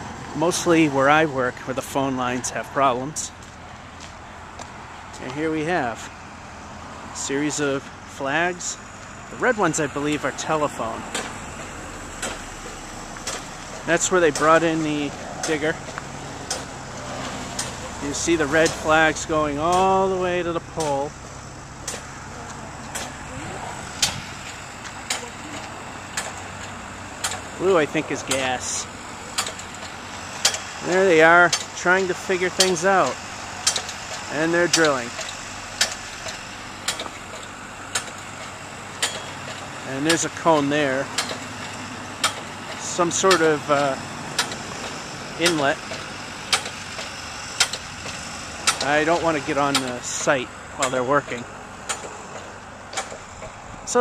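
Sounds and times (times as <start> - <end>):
low engine hum: 0.0 - 54.0
footstep ticks: 3.3 - 6.1, 10.0 - 54.0
sharp clicks: 11.1 - 19.0, 20.7 - 22.1, 22.8 - 23.2, 23.9 - 27.5, 29.3 - 53.6.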